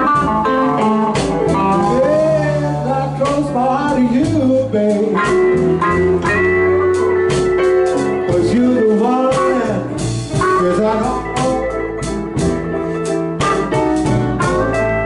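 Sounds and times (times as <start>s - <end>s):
blues band playing: 0.0s - 15.0s
electric guitar lead: 0.0s - 15.0s.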